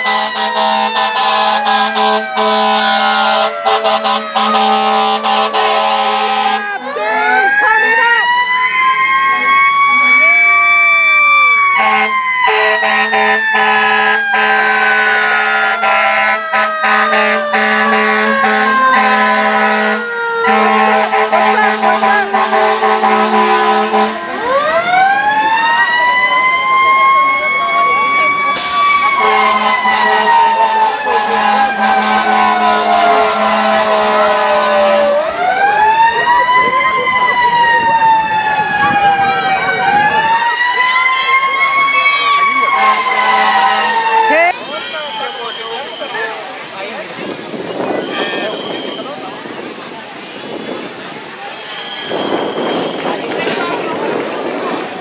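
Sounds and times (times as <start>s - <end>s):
fire truck siren wailing: 0.0s - 55.0s.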